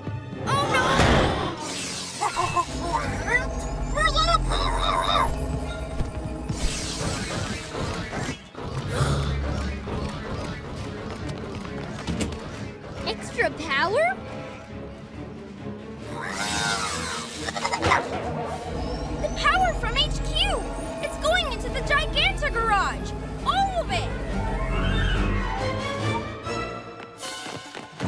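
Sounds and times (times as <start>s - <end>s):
cartoon background music: 0.0s - 27.4s.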